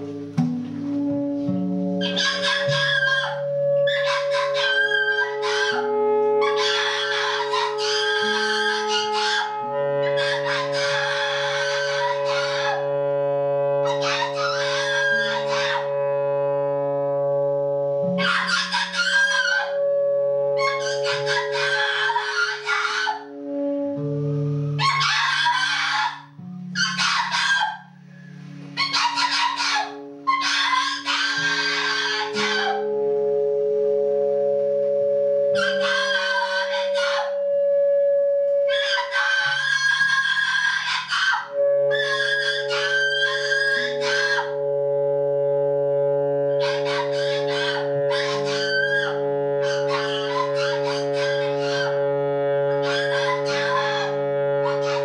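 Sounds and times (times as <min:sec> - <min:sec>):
electric guitar drone: 0:00.0 - 0:55.0
saxophone drone: 0:00.0 - 0:55.0
person screaming shrill shrieks: 0:20.8 - 0:23.3, 0:24.8 - 0:26.2, 0:28.8 - 0:32.8, 0:38.7 - 0:44.4.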